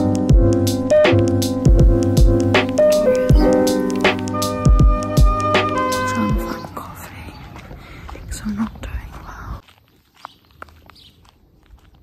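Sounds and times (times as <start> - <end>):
woman whispering: 6.1 - 7.6, 8.2 - 9.6.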